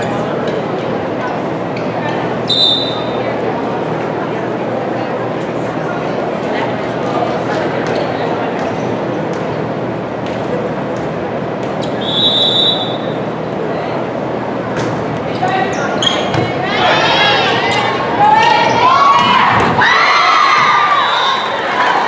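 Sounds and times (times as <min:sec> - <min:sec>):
crowd chatter echoing: 0:00.0 - 0:22.0
referee's whistle: 0:02.5 - 0:03.2, 0:12.0 - 0:13.2.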